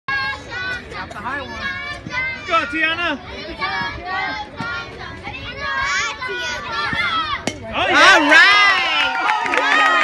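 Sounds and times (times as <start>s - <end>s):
children chattering and calling out: 0.1s - 7.8s
bat striking softball: 7.4s - 7.9s
children cheering: 7.9s - 10.0s.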